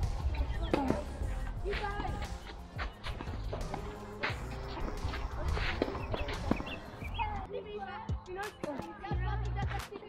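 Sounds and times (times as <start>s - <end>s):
distant voices: 0.0s - 7.5s
tennis ball knocks: 5.1s - 6.8s.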